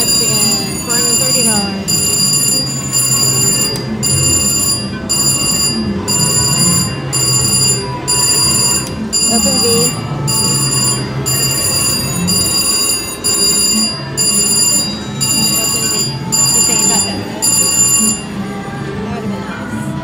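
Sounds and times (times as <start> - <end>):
slot machine ringing spin sound: 0.0 - 18.4.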